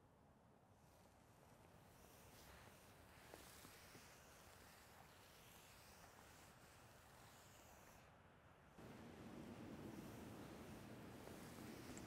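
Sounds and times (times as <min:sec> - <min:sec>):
faint ticks: 0:08.8 - 0:12.0.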